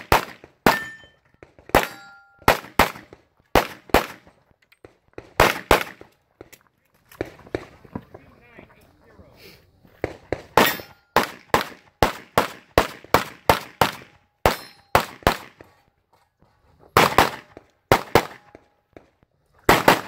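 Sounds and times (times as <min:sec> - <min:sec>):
rapid pistol fire: 0:00.0 - 0:00.8, 0:01.7 - 0:04.2, 0:05.3 - 0:06.1, 0:10.0 - 0:15.6, 0:19.7 - 0:20.0
metallic ring: 0:00.7 - 0:01.2, 0:01.9 - 0:02.4, 0:10.6 - 0:11.2, 0:14.6 - 0:15.0.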